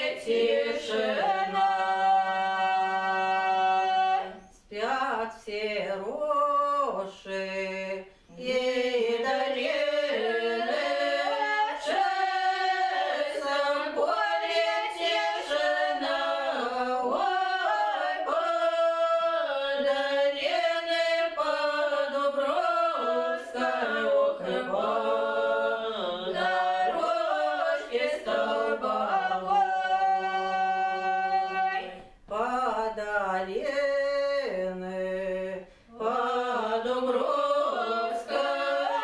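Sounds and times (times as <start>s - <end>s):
women's choir singing a cappella: 0.0s - 39.0s.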